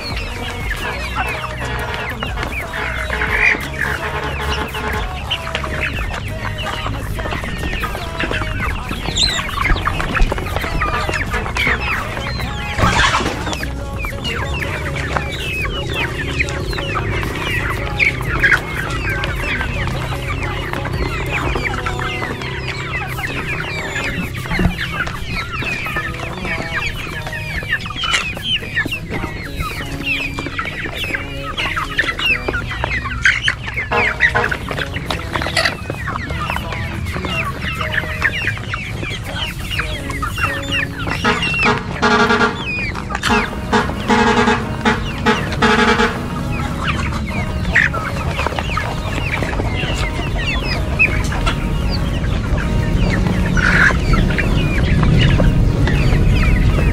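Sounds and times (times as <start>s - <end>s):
young chickens clucking and peeping: 0.0s - 56.9s.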